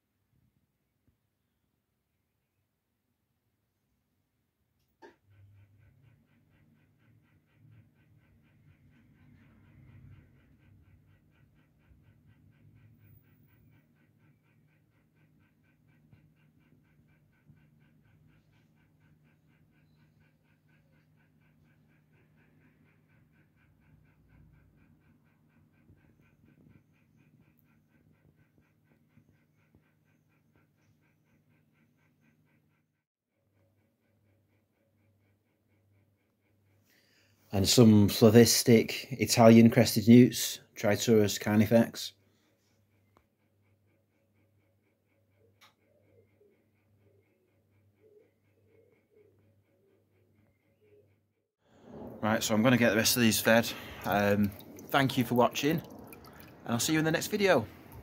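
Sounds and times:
faint low hum: 0:42.1 - 0:58.0
click: 0:45.6 - 0:45.8
fast even pulsing: 0:51.9 - 0:58.0.

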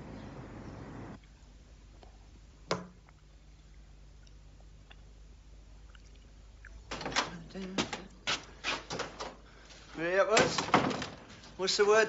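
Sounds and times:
door knocking and clattering: 0:06.9 - 0:08.1, 0:10.3 - 0:11.3.

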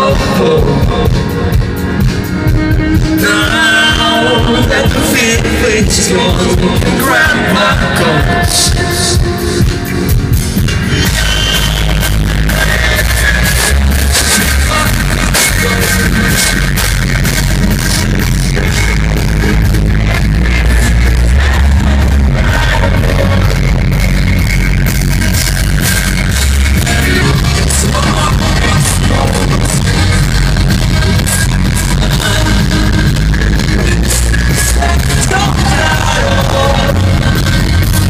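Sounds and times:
drums: 0:00.0 - 0:38.0
electric guitar: 0:00.0 - 0:38.0
heavy bass: 0:00.0 - 0:38.0.

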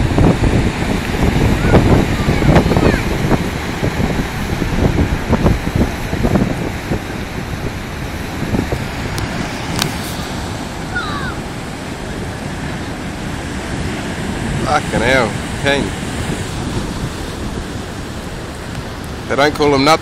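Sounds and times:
heavy surf breaking: 0:00.0 - 0:20.0
wind buffeting microphone: 0:00.0 - 0:20.0.

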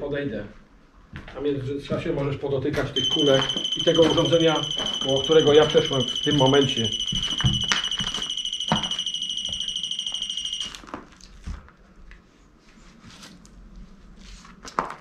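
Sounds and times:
rapidly pulsing electronic alarm: 0:03.0 - 0:10.8.

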